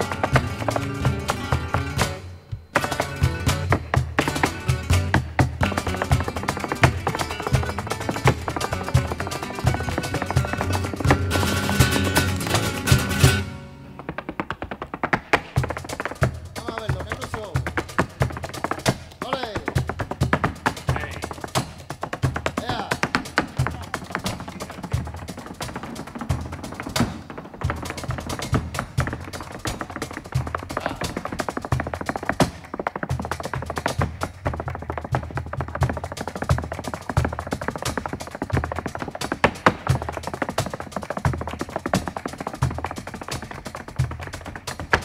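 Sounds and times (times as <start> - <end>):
flamenco accompaniment: 0.0 - 45.0
flamenco shoes striking floor: 0.0 - 45.0
heavy low stamps: 0.0 - 45.0.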